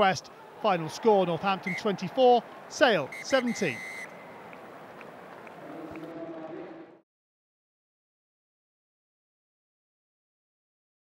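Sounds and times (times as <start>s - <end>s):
stadium crowd noise: 0.0s - 7.0s.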